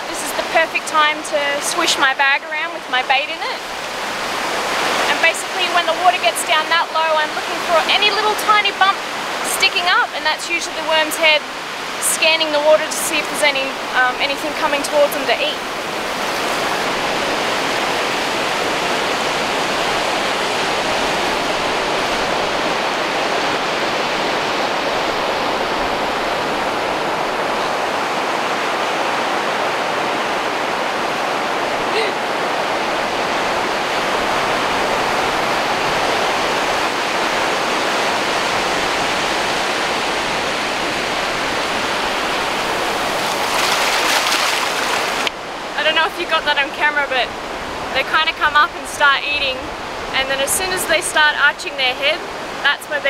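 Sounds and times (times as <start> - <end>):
surf washing over sand: 0.0 - 53.0.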